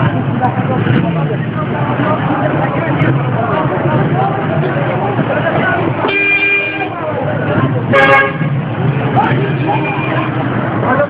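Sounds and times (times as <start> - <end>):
crowd of voices: 0.0 - 11.0
vehicle horns: 6.0 - 7.0, 7.9 - 10.5.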